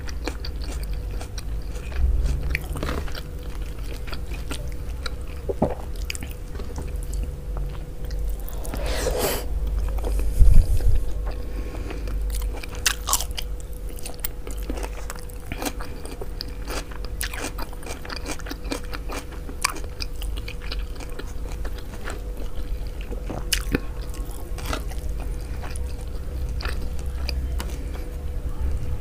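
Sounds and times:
person chewing food: 0.0 - 28.0.

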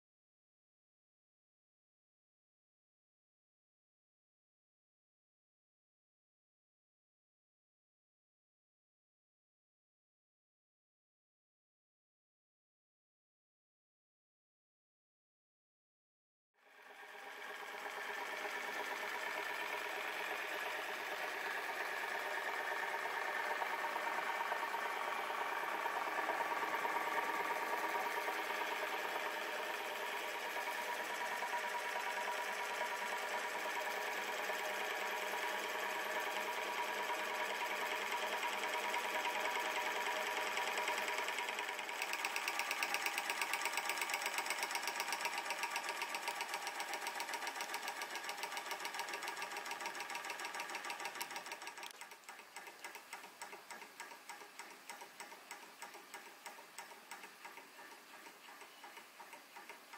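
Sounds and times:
model engine mechanical clatter: 16.7 - 59.9.

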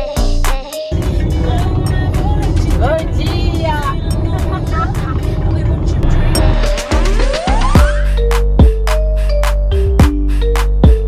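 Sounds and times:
car road and engine noise: 0.9 - 9.0
women talking: 2.4 - 5.5.

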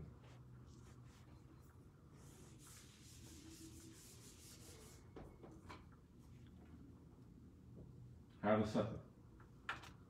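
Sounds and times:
eraser wiping a whiteboard: 0.2 - 5.2.

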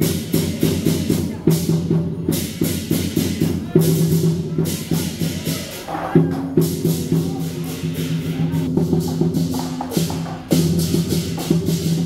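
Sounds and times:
cymbals clashing: 0.0 - 12.0
large drums beating fast: 0.0 - 12.0.

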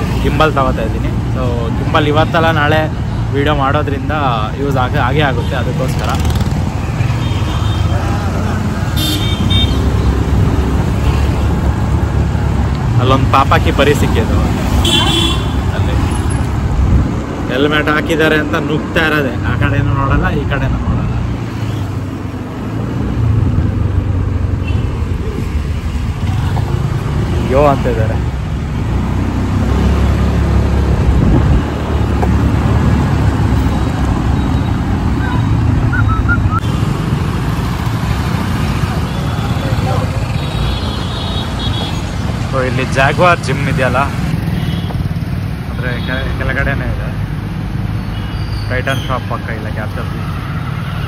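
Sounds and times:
low rumble of traffic: 0.0 - 51.0
wind on microphone: 30.9 - 31.8.

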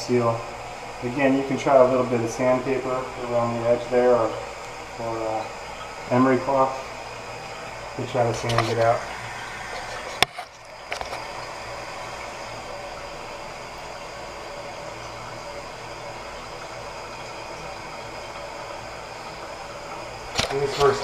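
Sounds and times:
toilet tank refilling: 0.0 - 21.0.

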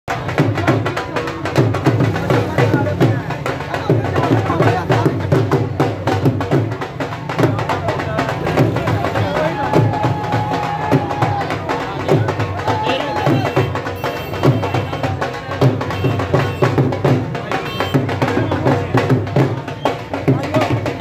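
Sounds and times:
drums beaten with sticks: 0.1 - 21.0
crowd shouting: 8.9 - 15.5.

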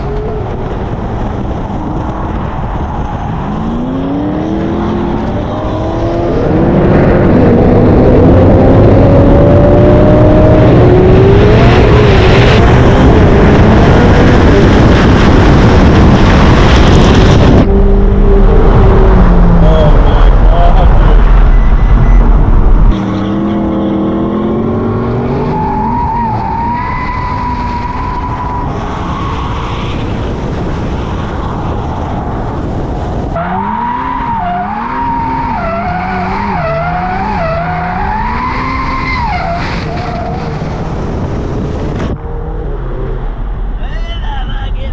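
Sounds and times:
wind noise on microphone: 0.0 - 23.0, 39.2 - 43.8.

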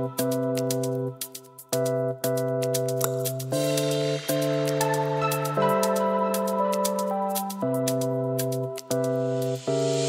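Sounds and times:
house music with synth chords: 0.0 - 10.0.

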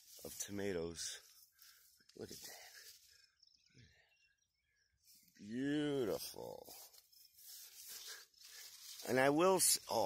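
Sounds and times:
faint rustling of foliage: 0.0 - 10.0.

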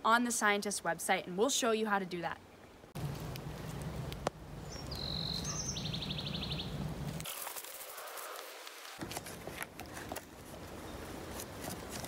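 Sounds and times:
low outdoor rumble: 3.0 - 7.2
small bird chirping: 4.6 - 6.8.

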